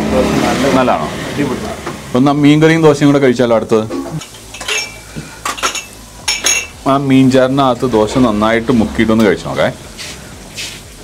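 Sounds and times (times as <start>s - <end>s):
metal dishes clinking: 4.0s - 6.8s.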